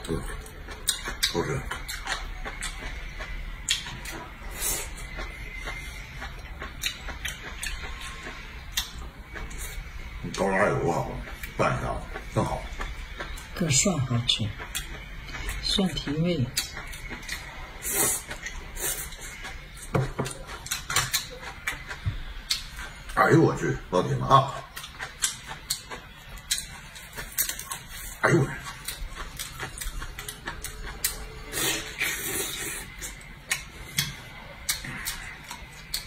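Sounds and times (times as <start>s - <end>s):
person chewing with mouth open: 0.0s - 23.6s, 24.2s - 36.0s
mouth clicks and sucking: 30.9s - 36.0s.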